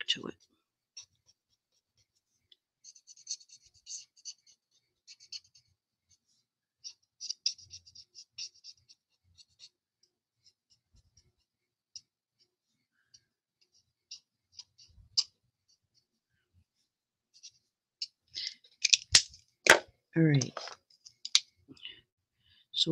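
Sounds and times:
marker scratching on paper: 0.4 - 9.8
marker ticking on paper: 6.8 - 9.7.

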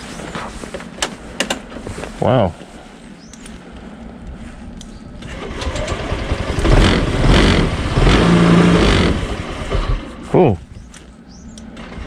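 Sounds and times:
scooter engine revving: 5.3 - 10.1.

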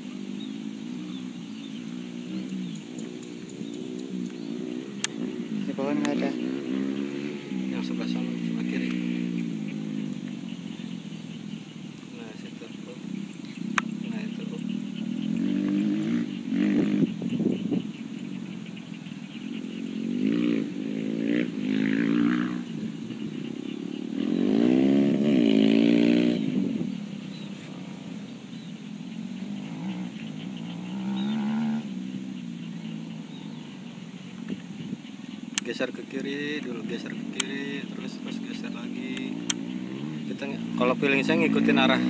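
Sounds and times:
vehicle engine revving: 0.0 - 42.0.

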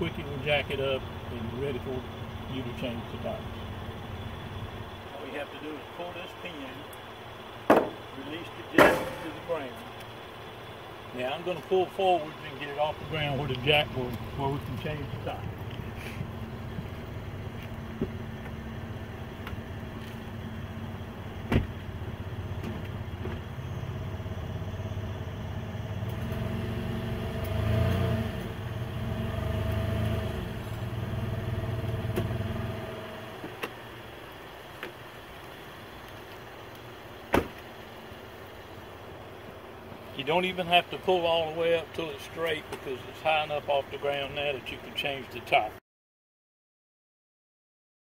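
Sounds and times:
vehicle engine running: 0.0 - 45.7.

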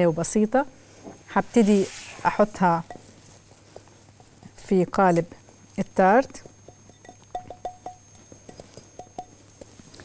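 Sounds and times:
spatula scraping glass bowl: 1.4 - 3.2.

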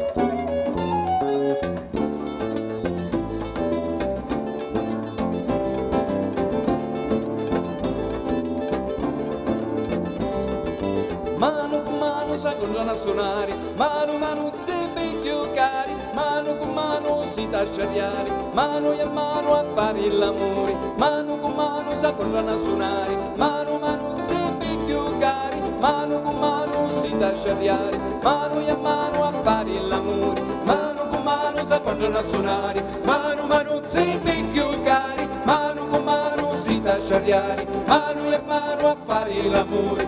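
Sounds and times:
acoustic guitars: 0.0 - 40.0
bass: 0.0 - 40.0
percussion: 0.0 - 40.0
sliding lead melody: 0.0 - 40.0.

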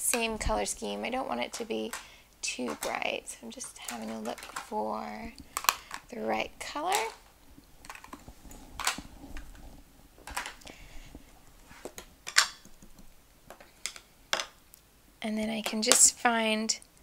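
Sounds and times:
plastic cases clicking on stone: 1.5 - 6.1, 6.8 - 8.2.

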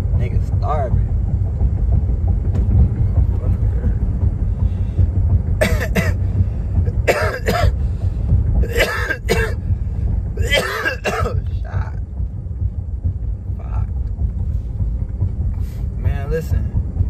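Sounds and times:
car cabin rumble: 0.0 - 17.0
man coughing: 5.6 - 6.2, 6.9 - 7.8, 8.6 - 9.6, 10.4 - 12.0.

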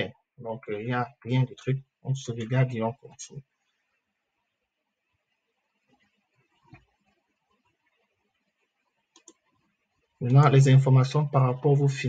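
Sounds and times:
computer mouse clicks: 5.8 - 10.0.

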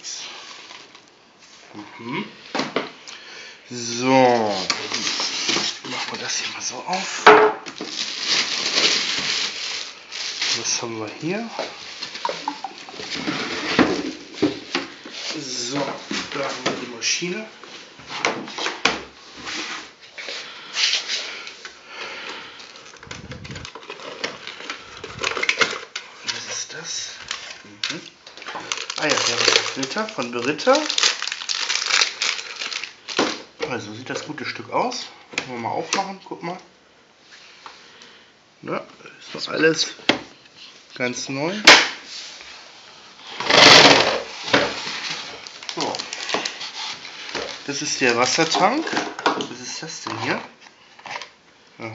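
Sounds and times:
paper packaging rustling: 3.8 - 21.8, 22.4 - 34.4, 43.2 - 51.4.

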